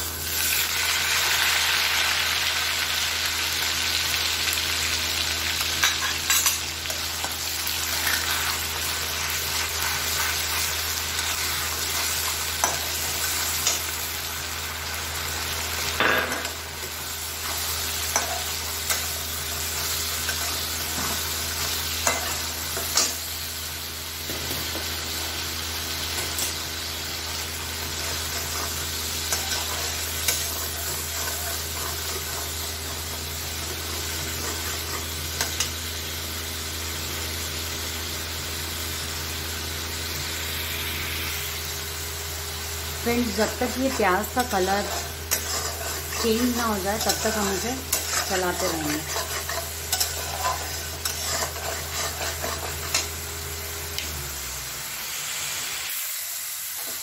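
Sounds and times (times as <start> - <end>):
paste sizzling in hot oil: 0.0 - 57.0
metal spatula scraping a pan: 28.0 - 35.7, 43.8 - 53.1.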